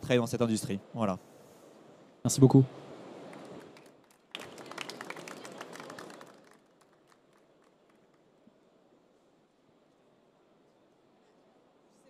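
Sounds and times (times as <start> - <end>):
small audience applause: 3.3 - 8.3.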